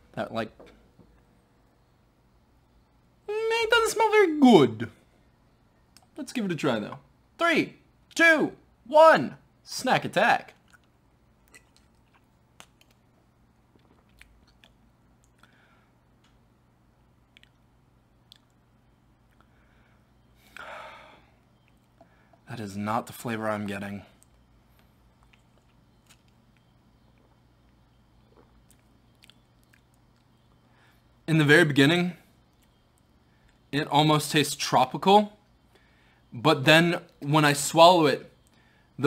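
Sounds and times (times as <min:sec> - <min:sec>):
lip smacks and mouth clicks: 0:10.6 - 0:15.6, 0:17.3 - 0:18.6, 0:24.2 - 0:30.6.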